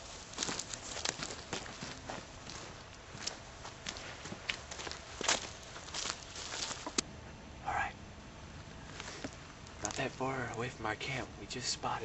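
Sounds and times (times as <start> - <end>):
footsteps: 0.0 - 7.0, 8.8 - 10.7.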